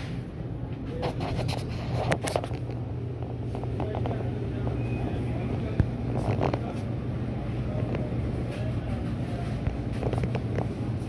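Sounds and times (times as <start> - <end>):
supermarket ambience hum: 0.0 - 11.0.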